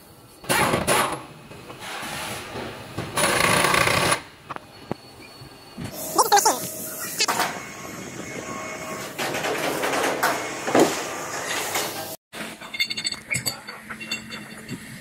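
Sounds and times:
metallic clinks of shackles: 12.6 - 15.0.

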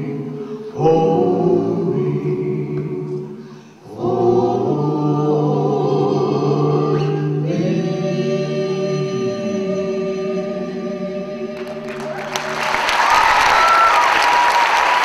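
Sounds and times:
vocal group singing gospel harmony: 0.0 - 12.7.

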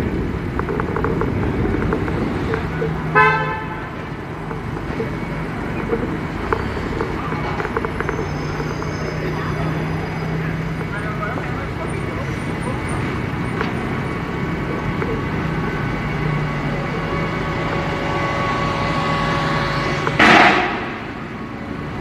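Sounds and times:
low engine hum: 0.0 - 22.0
road and traffic noise: 0.0 - 22.0.

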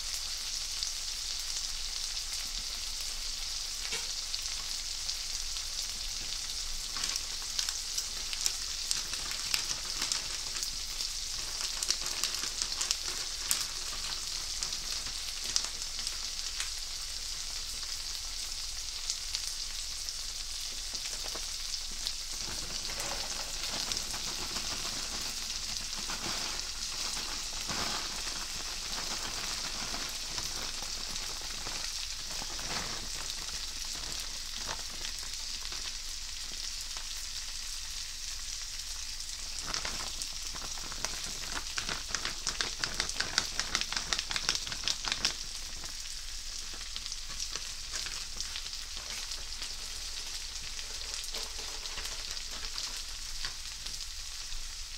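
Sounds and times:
rice frying in a skillet: 0.0 - 54.9.

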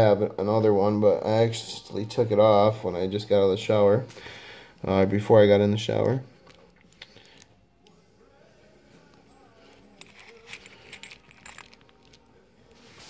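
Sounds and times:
small metallic clicks and clinks: 10.0 - 12.3.

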